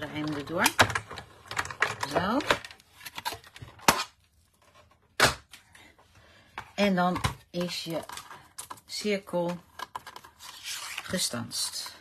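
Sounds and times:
plastic plates clacking down: 0.0s - 4.1s.

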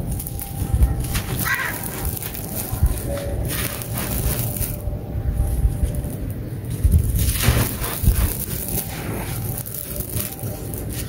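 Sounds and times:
crumbs pattering down: 0.0s - 11.0s.

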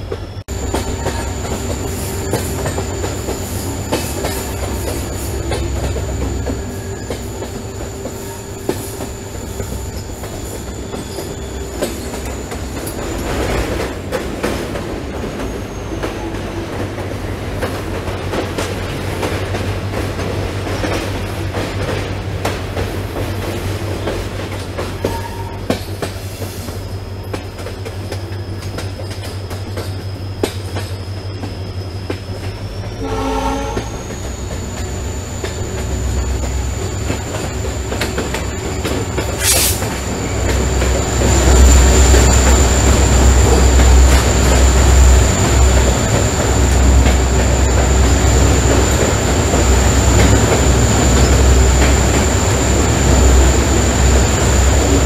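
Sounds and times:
train coaches rumbling on track: 0.0s - 55.0s
high wheel squeal: 0.4s - 13.6s, 29.8s - 44.7s.

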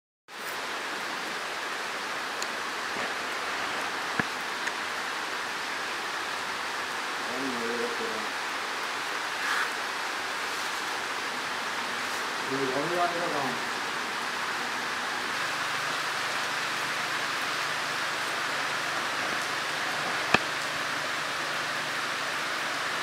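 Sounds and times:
rain falling: 0.3s - 23.0s.

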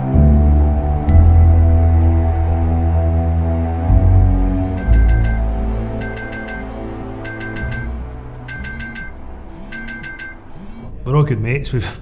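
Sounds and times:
low background music: 0.0s - 12.0s
alarm beeping: 4.0s - 10.9s.

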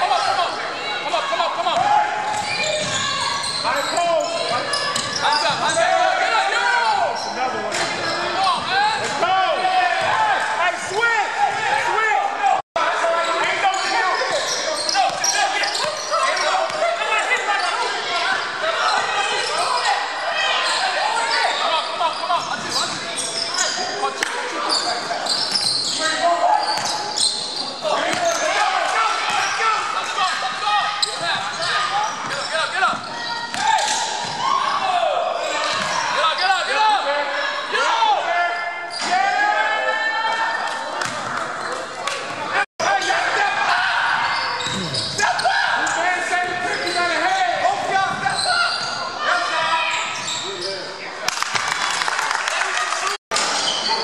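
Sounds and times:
players calling out: 0.0s - 51.1s
sneakers squeaking: 0.1s - 11.9s, 13.0s - 36.8s, 40.9s - 43.2s, 44.1s - 51.0s, 53.4s - 54.0s.

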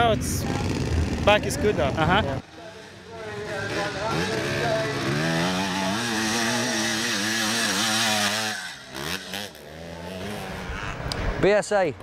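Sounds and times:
motocross bike engine revving: 0.0s - 11.1s.

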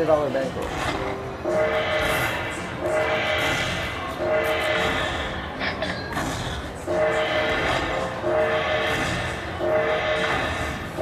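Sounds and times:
slot machine win tones: 6.8s - 11.0s.

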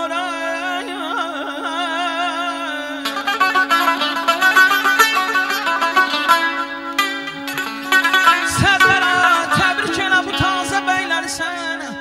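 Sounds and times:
plucked string instrument fast runs: 3.0s - 12.0s.

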